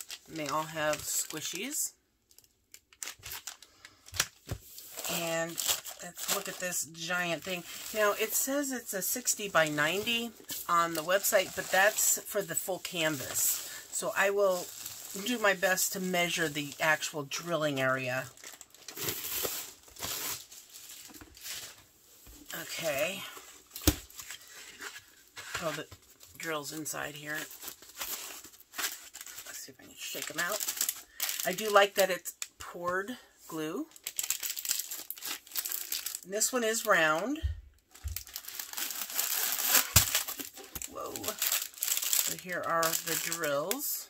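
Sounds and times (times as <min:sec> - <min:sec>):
plastic wrap crinkling: 0:00.0 - 0:32.7, 0:33.7 - 0:44.0
small beads rattling in bag: 0:37.9 - 0:43.9.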